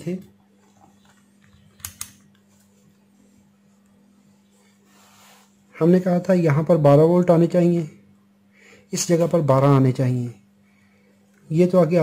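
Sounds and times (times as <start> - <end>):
faint steady hum: 0.0 - 12.0
sharp clicks: 1.8 - 2.3.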